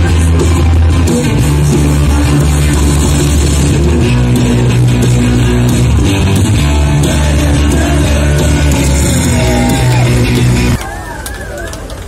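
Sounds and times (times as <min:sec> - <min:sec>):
punk rock band playing: 0:00.0 - 0:10.8
crowd voices and shouts: 0:00.0 - 0:12.0.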